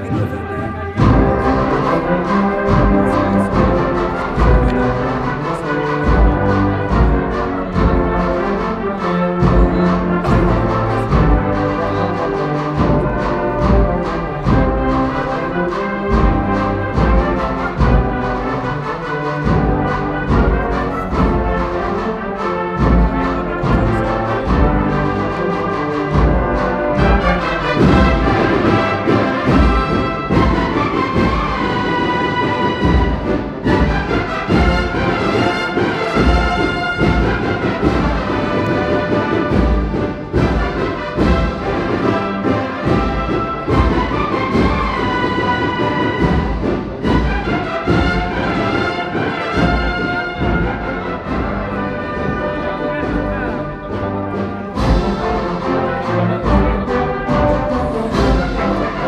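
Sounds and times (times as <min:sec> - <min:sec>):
brass melody: 0:00.0 - 0:59.0
bass drum beats: 0:09.4 - 0:12.2.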